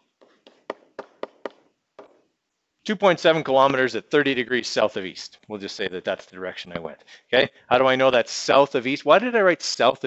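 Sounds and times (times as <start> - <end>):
stylus tapping on writing surface: 0.2 - 2.2.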